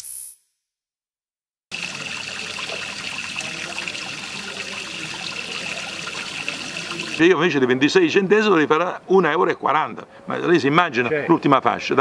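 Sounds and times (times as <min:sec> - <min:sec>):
water trickling: 0:01.7 - 0:07.3.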